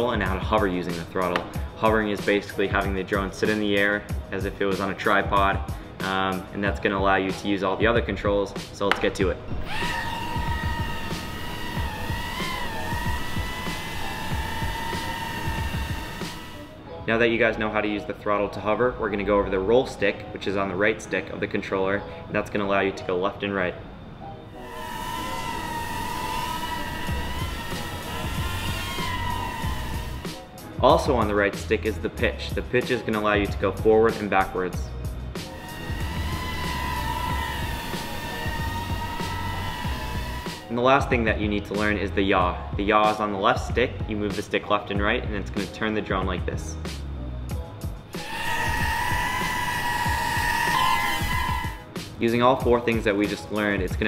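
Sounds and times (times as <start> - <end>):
background music with low beat: 0.0 - 17.3
background music: 0.0 - 54.0
quadcopter propellers whining: 9.5 - 16.8, 24.6 - 30.7, 35.4 - 40.7, 48.1 - 51.9.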